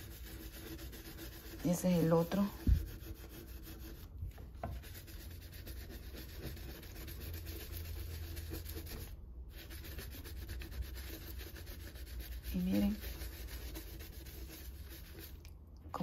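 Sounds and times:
scouring pad scrubbing cooktop: 0:00.0 - 0:16.0.

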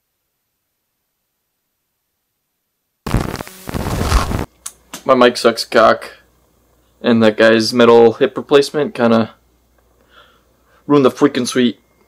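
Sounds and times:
crackling microphone rumble: 0:03.1 - 0:04.5.

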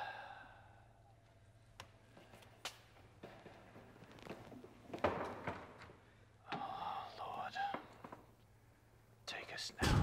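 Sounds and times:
man breathing oh: 0:00.0 - 0:01.2.

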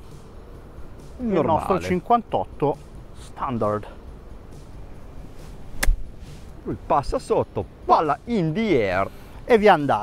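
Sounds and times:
golf club striking ball: 0:05.7 - 0:06.3.

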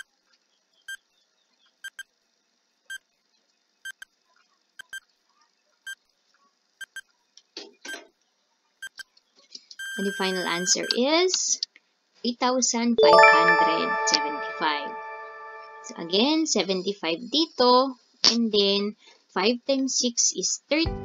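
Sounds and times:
countdown timer beeps: 0:13.0 - 0:16.2.

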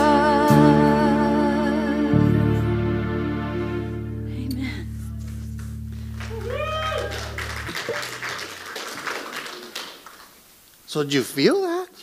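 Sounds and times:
congregation clapping: 0:05.2 - 0:10.5.

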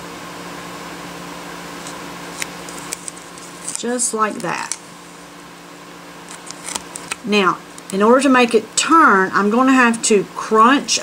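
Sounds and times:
low room hum: 0:00.0 - 0:11.0
card stock ticks and rustles: 0:01.8 - 0:04.8, 0:06.3 - 0:08.0.

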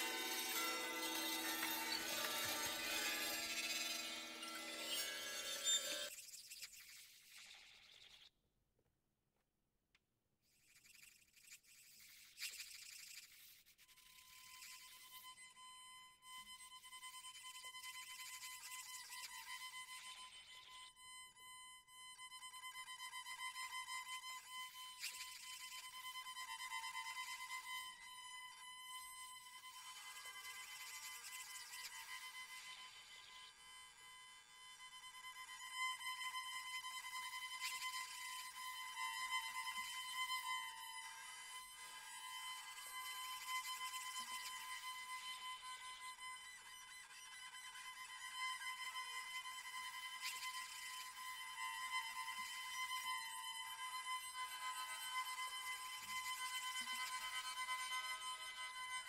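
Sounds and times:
bowed strings scratchy tone: 0:00.0 - 0:06.1.

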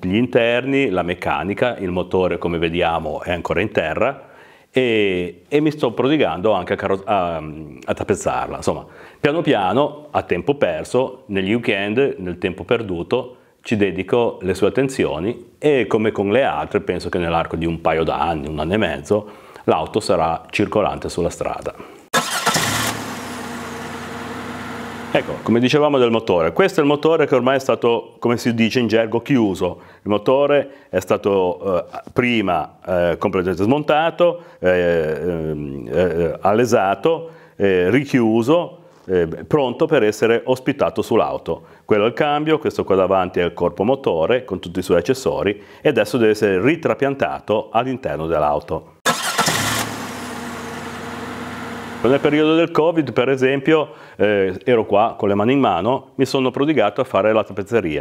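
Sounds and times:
car engine starting and idling: 0:22.1 - 0:25.5, 0:49.1 - 0:52.4.

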